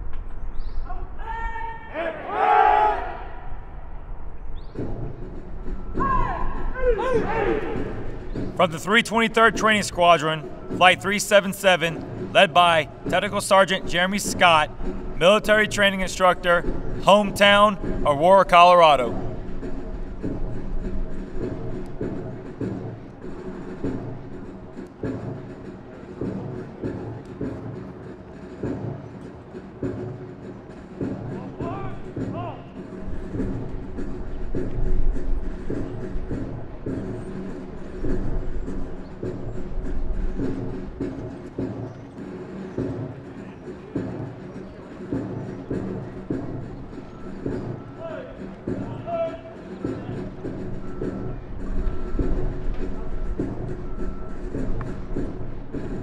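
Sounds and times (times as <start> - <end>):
military march music: 4.6 - 56.0.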